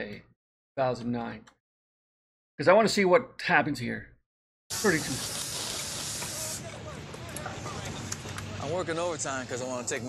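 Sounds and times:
gas torch hissing: 0:04.7 - 0:06.8.

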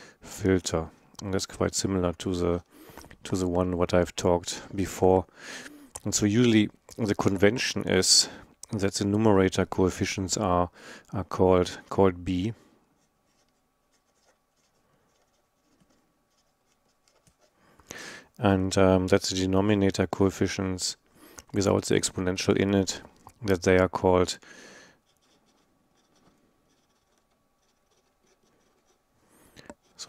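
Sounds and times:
marker scratching on paper: 0:25.1 - 0:29.0.

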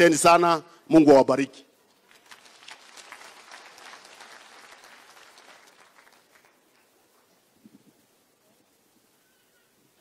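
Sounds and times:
audience applause: 0:02.0 - 0:07.0.

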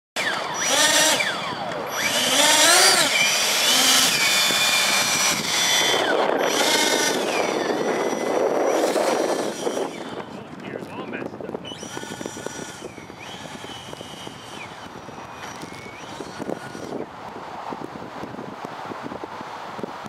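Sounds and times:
model jet fans whining: 0:00.2 - 0:20.0.

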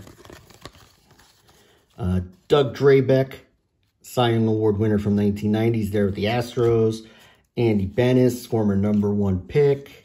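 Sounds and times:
cards and wrapper rustling: 0:00.0 - 0:04.0, 0:04.8 - 0:10.0.

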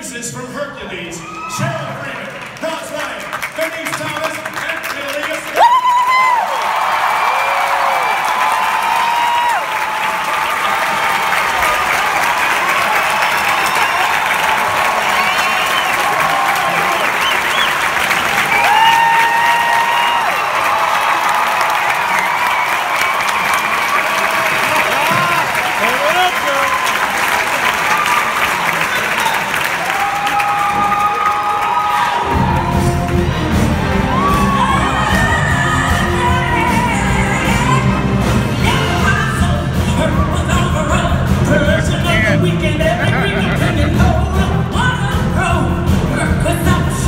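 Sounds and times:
audience applauding and cheering: 0:00.9 - 0:46.1
whoops and shouts: 0:01.2 - 0:01.7, 0:05.6 - 0:10.0, 0:18.4 - 0:25.5, 0:29.8 - 0:33.0, 0:34.1 - 0:37.1
orchestra playing: 0:32.2 - 0:47.0.

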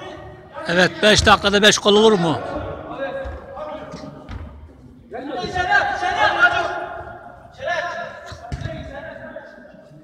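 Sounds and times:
football kicks echoing: 0:02.5 - 0:04.8, 0:05.4 - 0:05.8, 0:08.2 - 0:09.0.

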